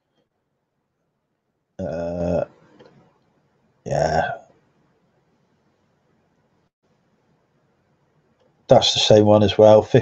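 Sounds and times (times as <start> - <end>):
man's drawn-out hesitation sound: 1.8 - 2.6, 3.9 - 4.4, 8.7 - 10.0
faint clicks: 8.3 - 8.6.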